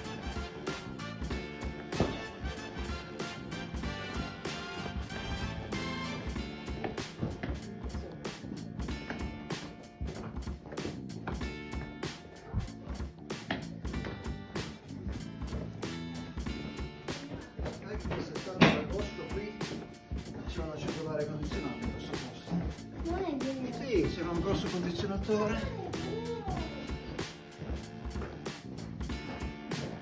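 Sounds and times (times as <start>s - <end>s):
music with steady beat: 0.0s - 30.0s.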